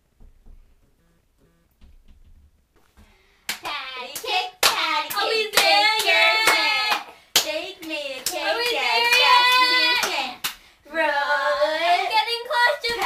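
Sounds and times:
hands clapping: 3.5s - 10.6s
girls singing a rhyme: 3.6s - 13.0s.

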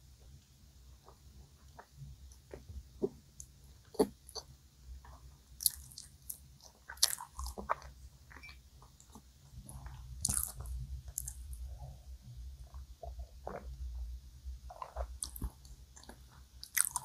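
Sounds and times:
mouth chewing sounds: 5.6s - 11.5s, 14.7s - 17.0s.

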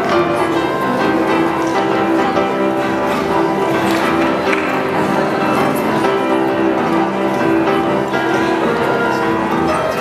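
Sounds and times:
boogie-woogie piano: 0.0s - 10.0s.

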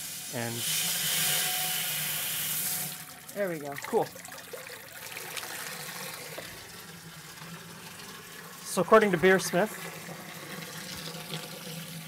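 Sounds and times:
hose water running into metal kettle: 0.0s - 12.0s.

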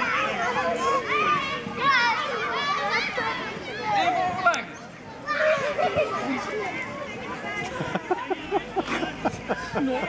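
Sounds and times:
children shouting at play: 0.0s - 10.0s.

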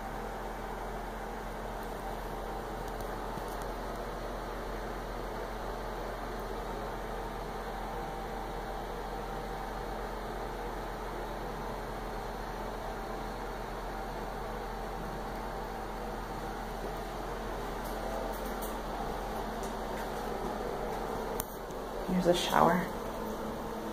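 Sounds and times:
ventilation hiss: 0.0s - 23.9s.

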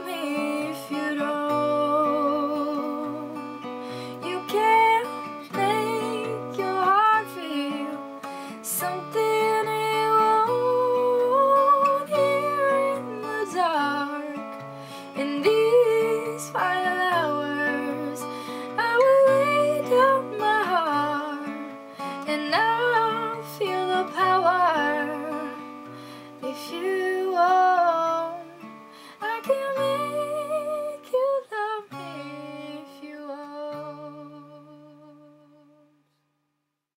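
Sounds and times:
woman singing a slow ballad: 0.0s - 36.0s
acoustic guitar: 0.0s - 36.4s.

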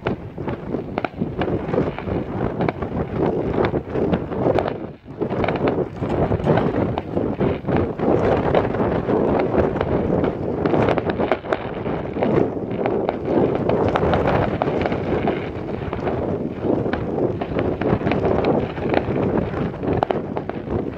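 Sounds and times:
fireworks crackling and popping: 0.0s - 20.9s
wind buffeting microphone: 0.0s - 20.9s.

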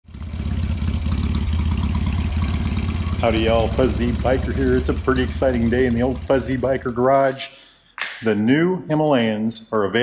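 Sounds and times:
motorcycle engine idling: 0.0s - 7.1s.

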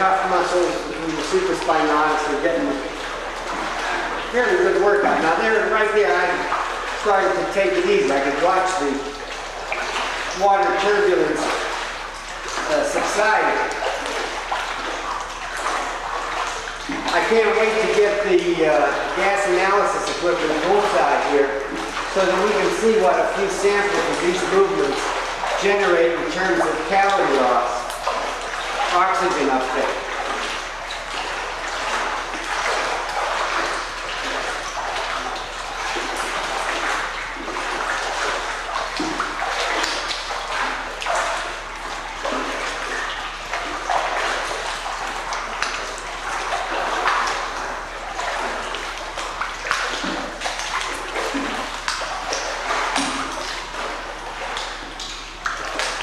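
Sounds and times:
pool water splashing: 0.0s - 56.0s.

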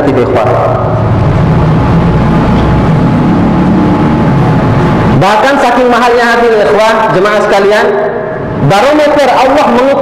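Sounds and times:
loud mechanical rumble with hum: 0.0s - 10.0s.

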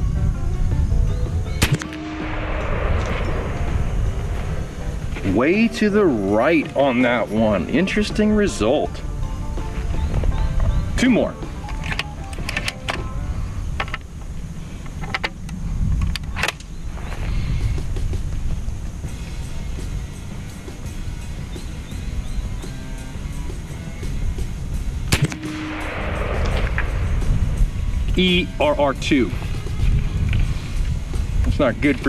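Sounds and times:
background music: 0.0s - 13.8s, 18.0s - 32.0s
air rifle firing: 1.6s - 6.0s, 25.1s - 28.1s
air rifle handling clicks: 11.6s - 13.1s, 14.8s - 16.7s.

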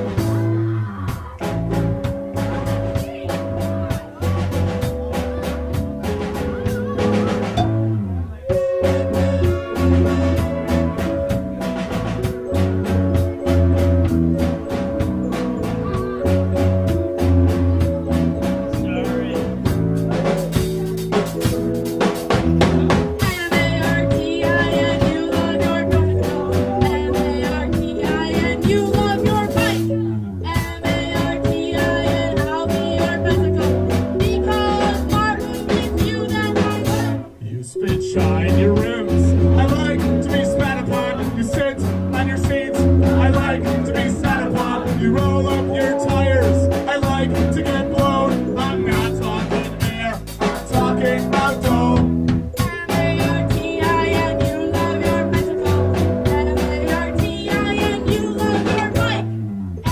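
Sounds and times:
person singing: 0.0s - 21.7s, 22.6s - 59.9s
drum kit: 0.0s - 59.9s
guitar: 0.0s - 59.9s
synth keyboard: 0.0s - 59.9s.

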